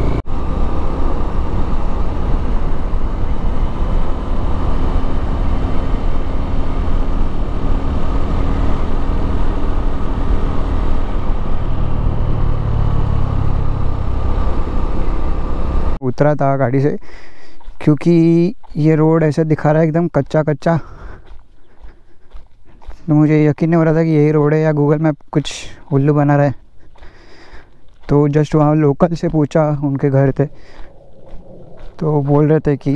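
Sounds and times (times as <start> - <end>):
motorcycle engine running: 0.0 - 16.0, 25.7 - 32.9.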